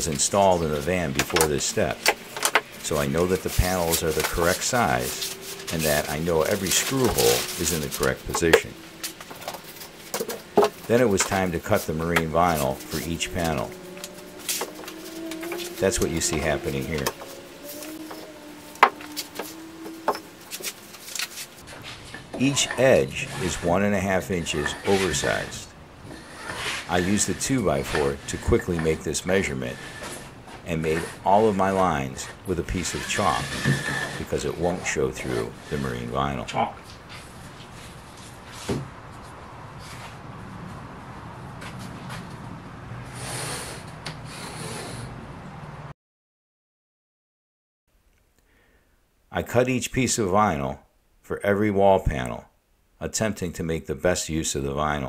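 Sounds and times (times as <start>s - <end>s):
wood rubbing and scuffing: 0.0s - 40.8s, 41.6s - 42.6s
steady low hum: 0.0s - 42.1s.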